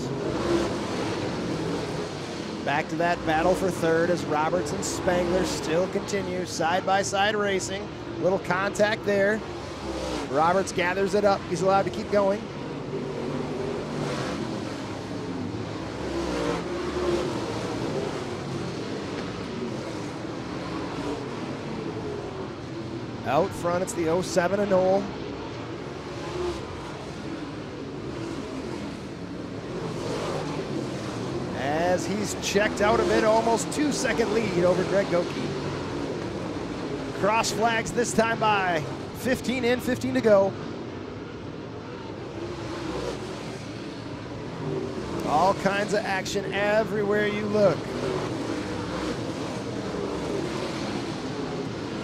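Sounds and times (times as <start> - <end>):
race car engines at speed: 0.0 - 52.0.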